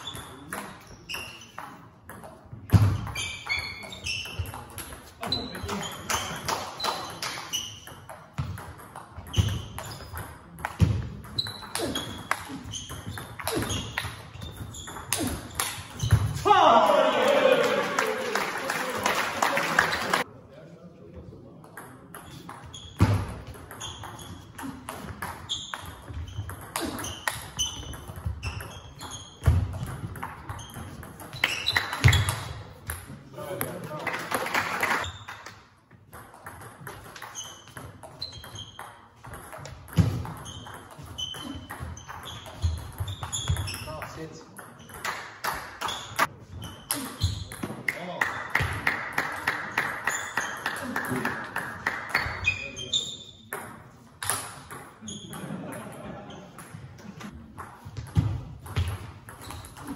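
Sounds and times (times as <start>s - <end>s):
table tennis ball pinging: 0.0s - 16.4s, 21.8s - 33.8s, 36.1s - 45.2s, 53.5s - 56.0s.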